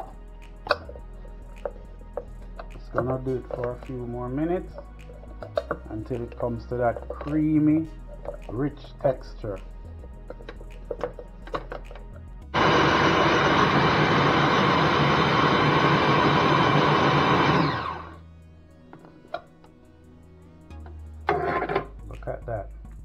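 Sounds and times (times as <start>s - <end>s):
food processor motor running: 12.6s - 18.2s.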